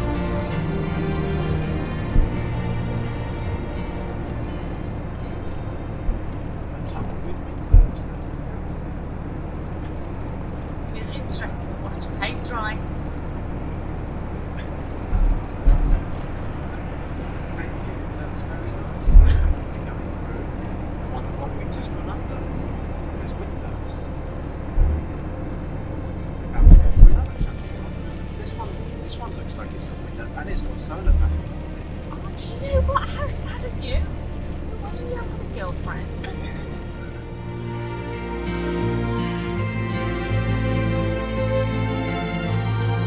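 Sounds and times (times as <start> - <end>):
short low thumps: 0.0 - 6.8, 7.6 - 8.3, 14.9 - 17.2, 24.5 - 27.6
van road and engine drone: 0.0 - 43.0.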